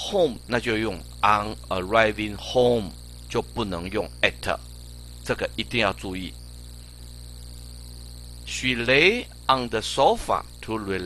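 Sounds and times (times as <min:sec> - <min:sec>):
person speaking: 0:00.0 - 0:04.6, 0:05.2 - 0:06.3
faint high-pitched whine: 0:00.0 - 0:11.0
low electrical hum: 0:00.0 - 0:11.0.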